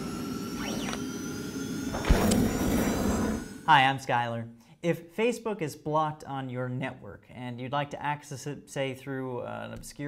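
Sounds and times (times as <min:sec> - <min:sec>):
sharp low hit: 0:01.9 - 0:03.3.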